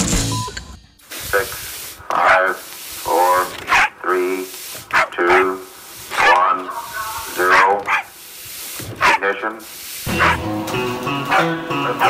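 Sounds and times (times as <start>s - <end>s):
dog barking: 3.6s - 4.0s, 4.9s - 5.5s, 7.4s - 8.2s, 9.0s - 9.2s, 10.1s - 10.5s, 11.3s - 12.0s.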